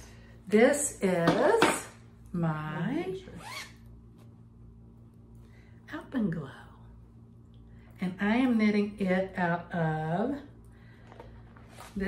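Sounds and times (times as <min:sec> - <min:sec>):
zipper being pulled open: 0:03.4 - 0:03.8.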